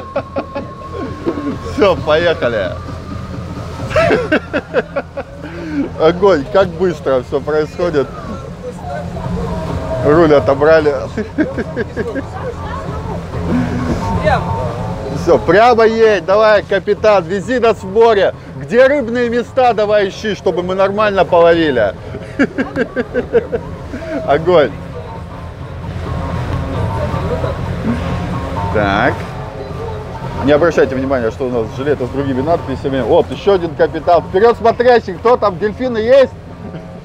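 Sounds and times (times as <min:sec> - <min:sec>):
boat engines humming: 0:00.0 - 0:37.0
faint music: 0:00.0 - 0:37.0
voices: 0:00.0 - 0:37.0
water noise: 0:00.0 - 0:37.0
wind: 0:00.0 - 0:37.0.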